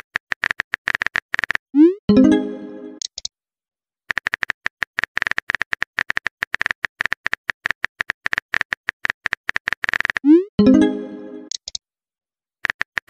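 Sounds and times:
keyboard typing clicks: 10.2 - 11.8.

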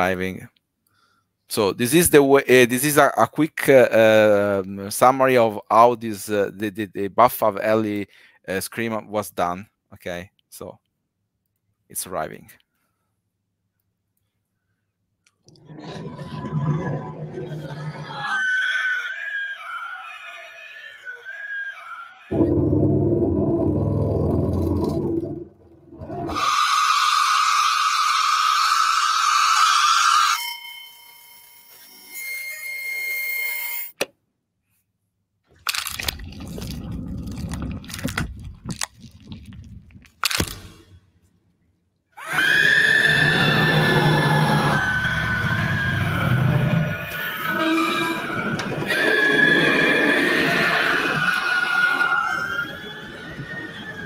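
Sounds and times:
coffee maker wet gurgle: 15.5 - 17.8, 36.0 - 40.2
horror scream sound effects: 15.6 - 30.4, 42.2 - 54.0
long wavering high scream: 18.0 - 24.2, 26.1 - 33.7, 42.2 - 54.0.

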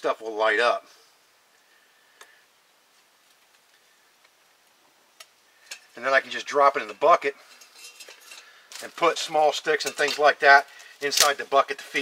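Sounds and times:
faint crackling of burning bark: 0.0 - 12.0.

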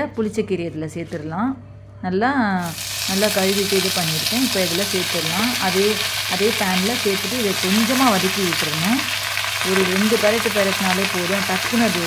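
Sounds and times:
leaves sizzling in hot oil: 2.6 - 12.0.

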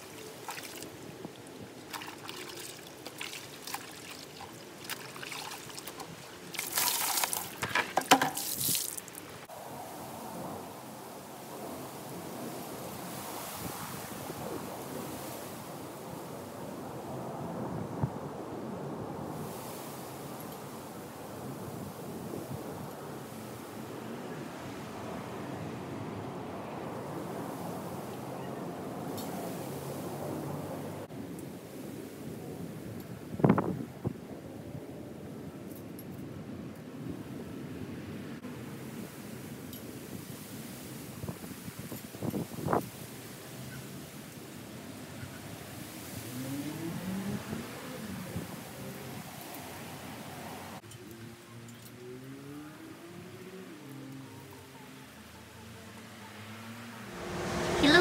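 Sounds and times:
loud splashes: 0.0 - 1.0, 1.8 - 9.5
water sloshing in basin: 0.0 - 9.3
wind-like background noise: 0.0 - 58.0.

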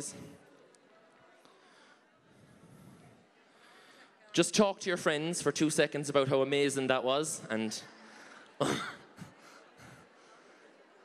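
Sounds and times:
low hall noise: 0.0 - 11.0
loud cough into microphone: 8.6 - 9.2.

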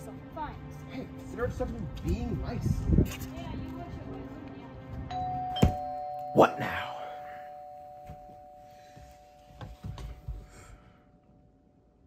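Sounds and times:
two-tone doorbell chime: 5.1 - 10.3.

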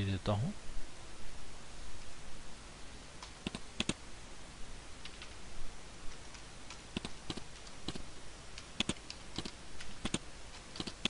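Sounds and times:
keyboard and mouse clicks: 3.2 - 4.0, 5.0 - 5.4, 6.1 - 11.0.

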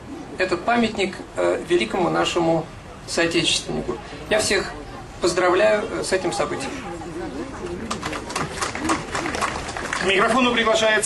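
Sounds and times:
scattered hand clapping: 7.6 - 10.8.

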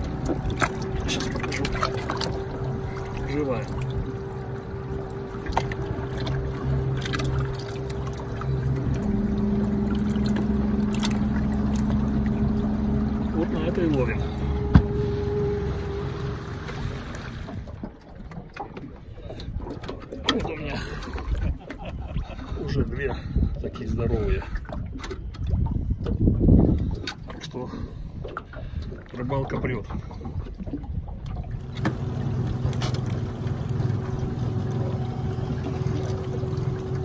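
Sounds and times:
motor running: 31.6 - 37.0.

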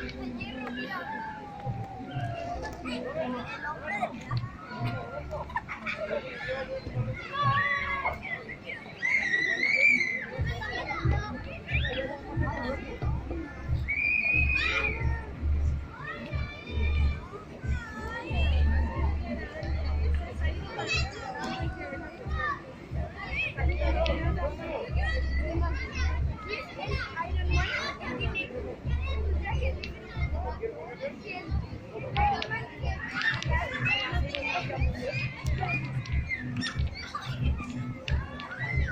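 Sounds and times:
background music with low beat: 0.0 - 3.2, 10.4 - 30.6, 31.4 - 38.9
children chattering: 0.0 - 38.9.

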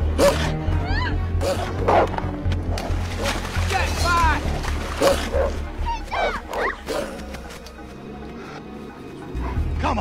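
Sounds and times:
background music: 0.0 - 10.0
wolves snarling and yelping: 5.0 - 9.8.

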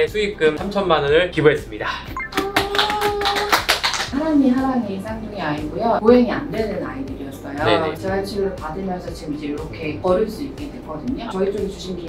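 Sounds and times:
sharp claps: 2.3 - 4.2.

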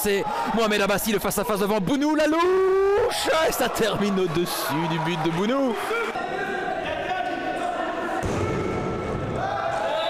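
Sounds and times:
crowd sound: 0.0 - 10.0.

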